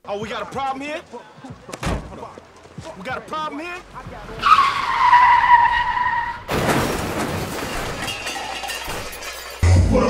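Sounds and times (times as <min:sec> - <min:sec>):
car crash clatter with debris: 0:06.3 - 0:09.6.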